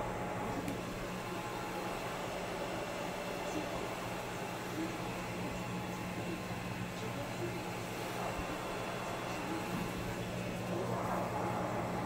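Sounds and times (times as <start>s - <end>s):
machine hum and hiss: 0.0s - 12.0s.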